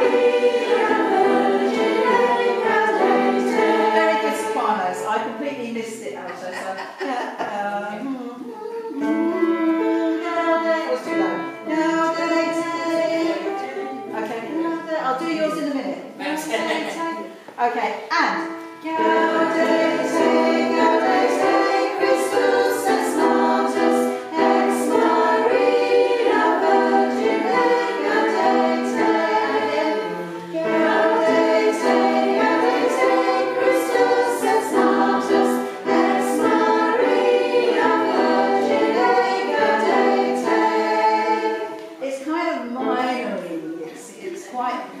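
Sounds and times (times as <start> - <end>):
choir singing in parts: 0.0 - 5.4, 8.9 - 14.4, 18.6 - 42.1.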